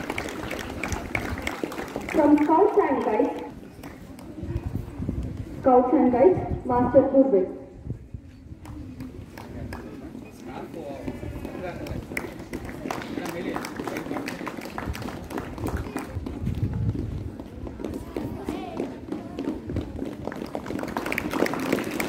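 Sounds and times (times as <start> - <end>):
murmur of voices: 0.0 - 22.0.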